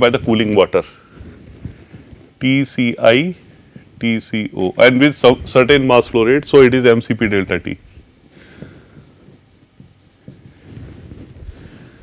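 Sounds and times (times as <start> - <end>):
marker pen scratching on whiteboard: 1.3 - 12.0.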